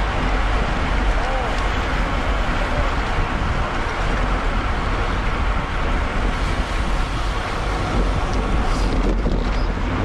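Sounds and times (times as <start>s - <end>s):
bicycle tyres on road: 0.0s - 10.0s
wind buffeting microphone: 0.0s - 10.0s
wind rush: 0.0s - 10.0s.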